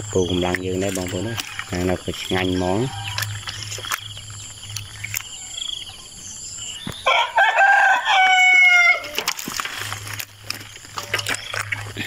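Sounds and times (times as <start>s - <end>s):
rooster crowing: 2.7s - 3.4s, 7.0s - 9.3s.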